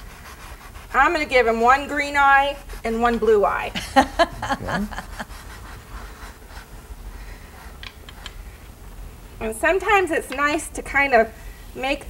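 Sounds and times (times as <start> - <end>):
chalk pastel scratching on paper: 0.0 - 3.7, 4.8 - 7.8
low room hum: 0.0 - 12.0.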